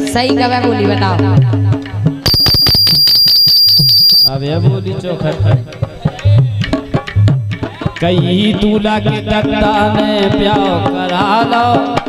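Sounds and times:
high shrill tone: 2.3 - 5.1.

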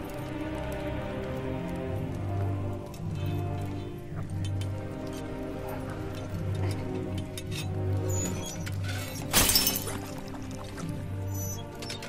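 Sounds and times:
dramatic orchestral music: 0.0 - 12.0.

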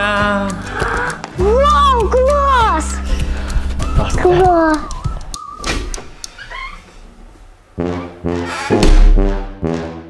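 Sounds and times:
puppy whining: 3.8 - 5.6
loud brass music chords: 7.8 - 10.0.

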